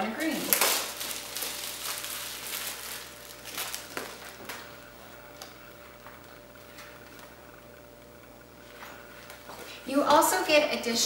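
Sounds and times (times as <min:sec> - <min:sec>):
plastic wrap crinkling: 0:00.0 - 0:09.5.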